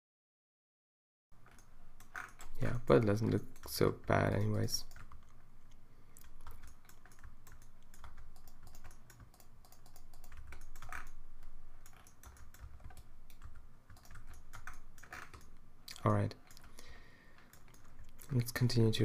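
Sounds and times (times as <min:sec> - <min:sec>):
computer keyboard keys clicking: 0:01.4 - 0:02.6, 0:03.2 - 0:18.6.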